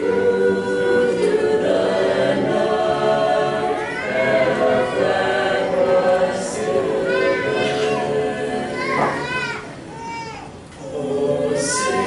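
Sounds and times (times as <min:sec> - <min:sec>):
choir singing unaccompanied: 0:00.0 - 0:09.8, 0:10.8 - 0:12.0
crowd voices: 0:00.0 - 0:12.0.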